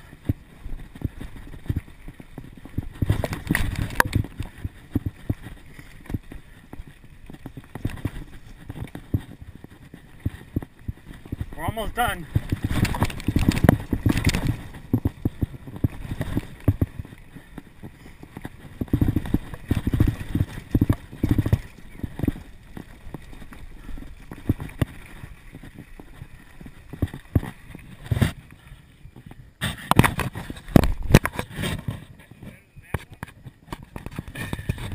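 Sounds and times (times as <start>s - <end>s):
wind rushing over microphone: 0.0s - 28.4s
bike frame rattling and knocking: 0.2s - 11.7s, 12.3s - 27.6s.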